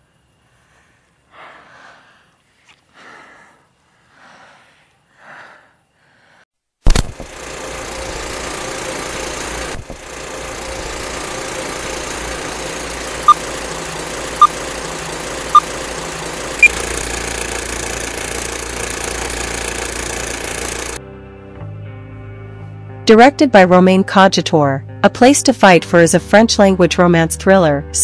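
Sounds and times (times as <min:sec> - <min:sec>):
mechanical whirring hum: 0:06.8 - 0:21.0.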